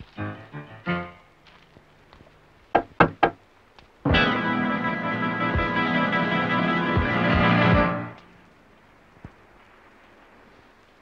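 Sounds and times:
quick knocks: 0:02.8 - 0:03.4.

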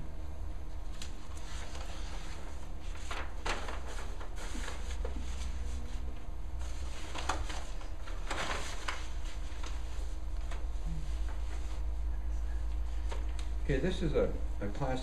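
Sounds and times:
steady low hum: 0:00.0 - 0:15.0
paper sheets rustling and crackling: 0:00.8 - 0:14.0.

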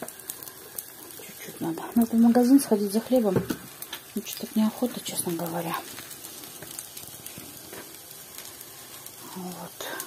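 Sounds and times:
batter sizzling in hot oil: 0:00.0 - 0:10.0.

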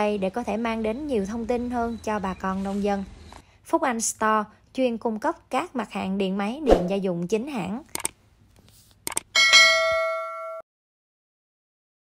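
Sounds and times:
click sound effects: 0:07.9 - 0:08.1, 0:09.0 - 0:09.3
notification bell ding: 0:09.4 - 0:10.6.

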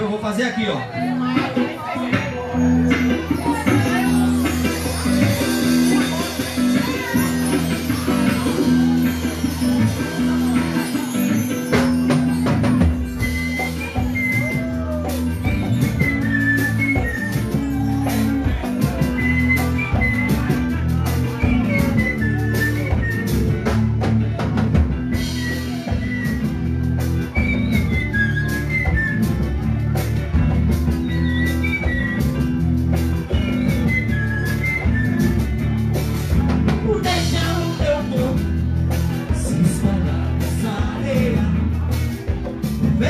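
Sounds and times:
heavy bass: 0:00.0 - 0:43.0
electric guitar: 0:00.8 - 0:43.0
drum beat: 0:01.0 - 0:43.0.

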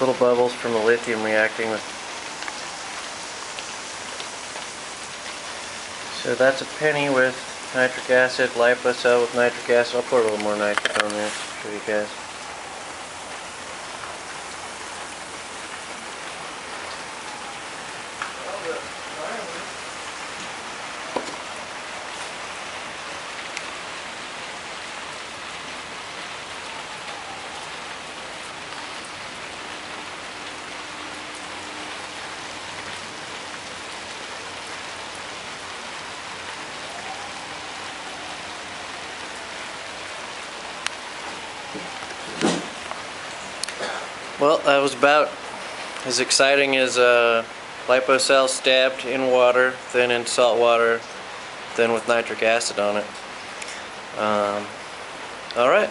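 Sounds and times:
acid reaction fizzing hiss: 0:00.0 - 0:23.8, 0:40.5 - 0:54.8.

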